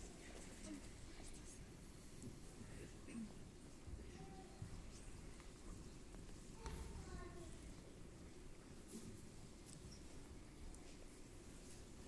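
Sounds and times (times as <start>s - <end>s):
faint murmuring voices: 0.0s - 9.2s.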